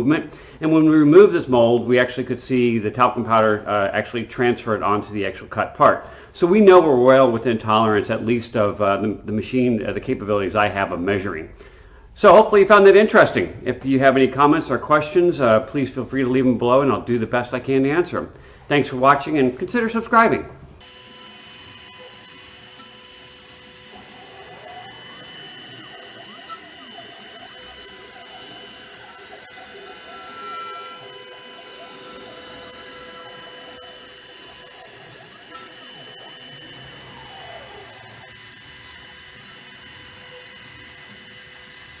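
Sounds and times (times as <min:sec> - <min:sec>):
router machine whine: 0:20.8 - 0:42.0.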